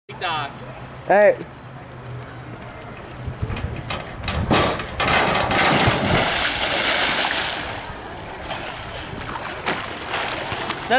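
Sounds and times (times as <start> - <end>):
diving board knocks: 4.3 - 7.3
loud splash: 5.2 - 7.9.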